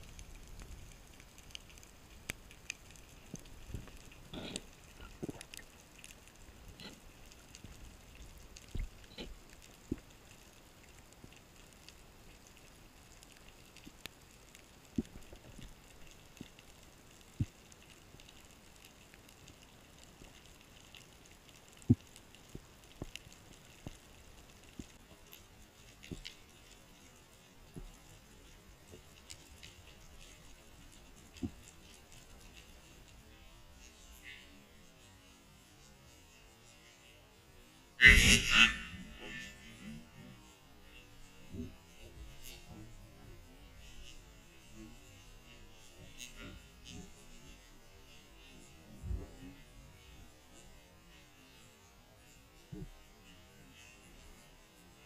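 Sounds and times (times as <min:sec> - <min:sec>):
crackling clicks: 0:00.0 - 0:34.5
underwater hiss: 0:38.0 - 0:40.2.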